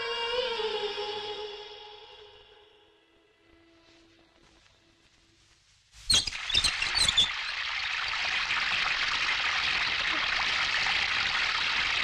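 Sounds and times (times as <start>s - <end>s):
valve wheel squeaking: 6.1s - 7.5s
water gushing from pipe: 6.3s - 12.0s.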